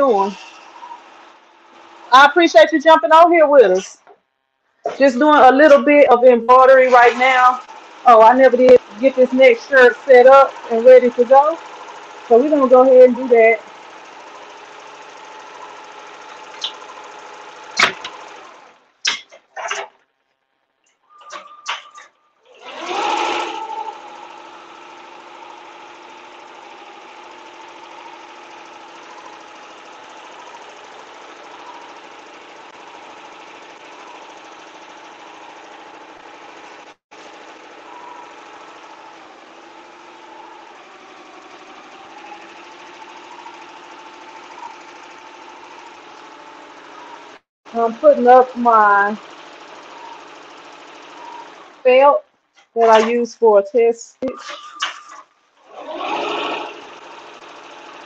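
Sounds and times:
embroidery machine stitching: 0.0 - 3.9, 5.0 - 19.0, 21.2 - 53.3, 54.5 - 58.0.

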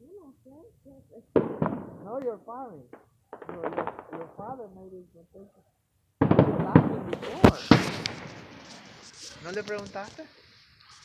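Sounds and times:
fireworks cracking and popping: 0.5 - 5.5, 6.2 - 11.0
loud fireworks bangs: 0.9 - 4.8, 6.2 - 10.1.

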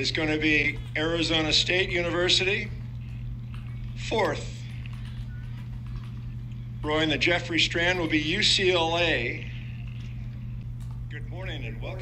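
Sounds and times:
announcer speaking: 0.0 - 2.9, 3.9 - 4.8, 6.8 - 9.6, 11.1 - 12.0
low electrical hum: 0.0 - 12.0.

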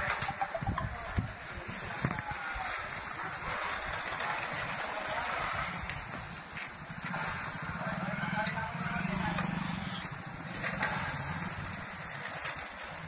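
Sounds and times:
rake scraping granules on concrete: 1.5 - 13.0.

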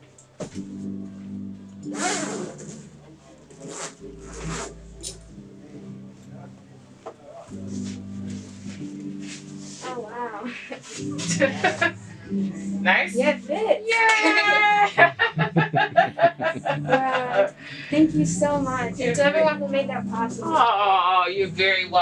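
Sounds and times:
soft background music chords: 0.0 - 22.0.

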